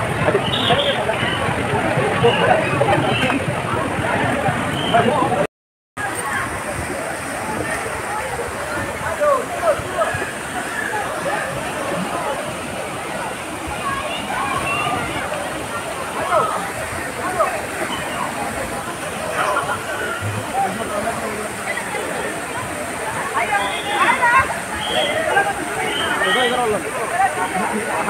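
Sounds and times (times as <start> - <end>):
splashing falling water: 0.0 - 5.4, 6.0 - 28.0
crowd shouting and chattering: 0.0 - 28.0.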